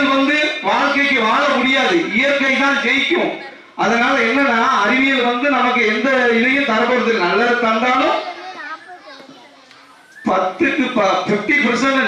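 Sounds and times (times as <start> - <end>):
man's amplified voice: 0.0 - 8.6, 10.2 - 12.0
children chattering: 0.0 - 12.0.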